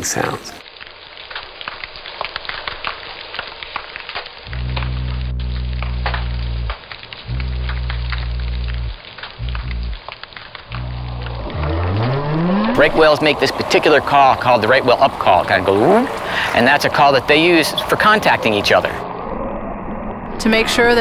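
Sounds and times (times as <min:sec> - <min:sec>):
snapping shrimp crackling: 0:00.7 - 0:11.6
low fish hums: 0:04.5 - 0:14.4
whale rising up call: 0:04.5 - 0:14.5.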